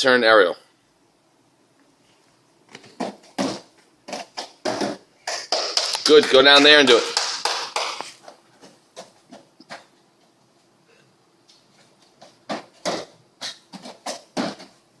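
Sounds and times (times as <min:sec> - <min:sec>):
feet and hands thumping on mats: 0:02.7 - 0:09.9, 0:11.6 - 0:14.8.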